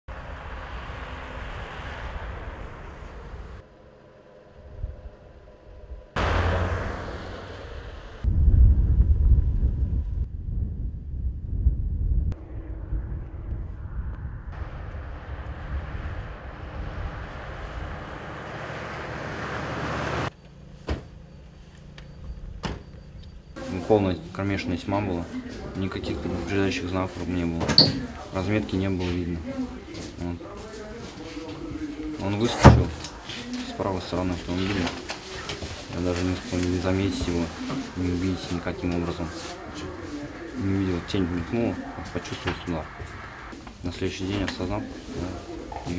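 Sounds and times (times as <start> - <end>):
road traffic: 0.0 - 8.3, 12.4 - 45.9.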